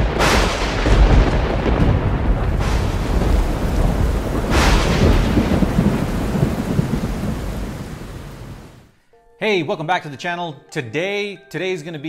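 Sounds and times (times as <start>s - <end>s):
rolling thunder: 0.0s - 8.9s
sharp thunder crack: 0.0s - 8.9s
rain: 0.0s - 9.0s.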